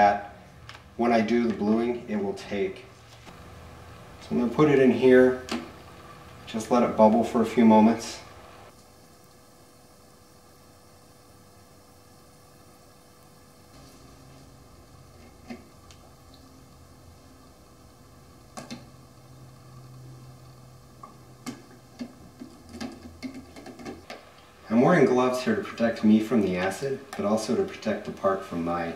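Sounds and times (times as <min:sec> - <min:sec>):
faint steady hum: 0:00.0 - 0:28.9.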